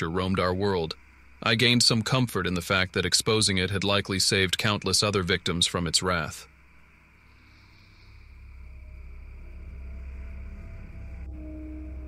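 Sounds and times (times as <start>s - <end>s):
faint high hiss: 0.0s - 12.0s
low dark ambient drone: 0.0s - 12.0s.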